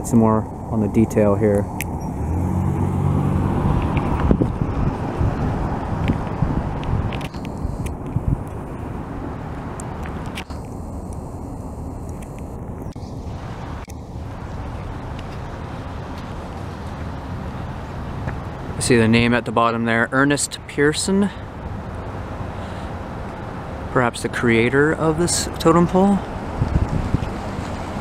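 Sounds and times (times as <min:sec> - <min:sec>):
background traffic noise: 0:00.0 - 0:28.0
vehicle engine hum: 0:00.0 - 0:28.0.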